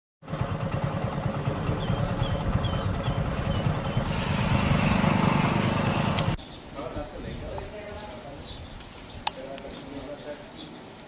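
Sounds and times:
motorcycle engine rumbling: 0.2s - 8.7s.

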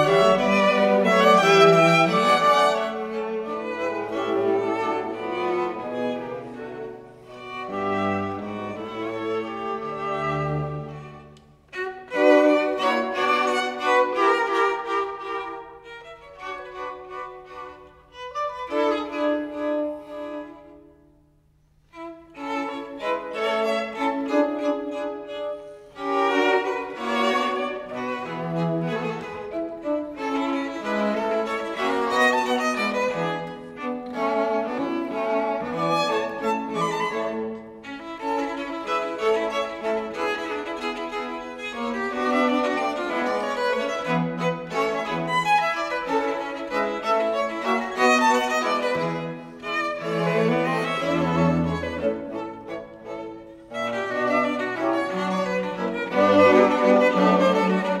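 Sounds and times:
string quartet playing: 0.0s - 58.0s.

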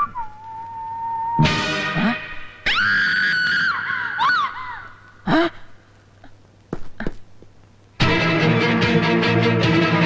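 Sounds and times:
high-pitched scream: 0.0s - 1.6s, 2.6s - 4.8s.

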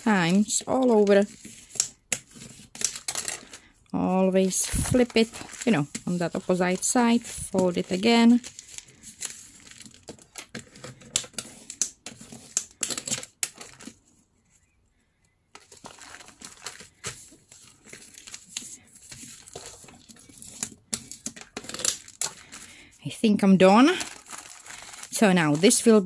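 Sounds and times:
newspaper crinkling and rustling: 0.0s - 3.8s, 4.4s - 14.1s, 15.5s - 26.0s.

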